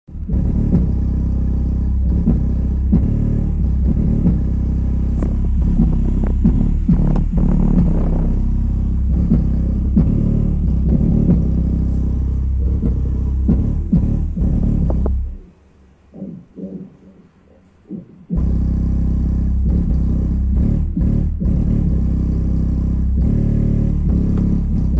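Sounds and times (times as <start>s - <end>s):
subwoofer playing deep bass: 0.0s - 24.9s.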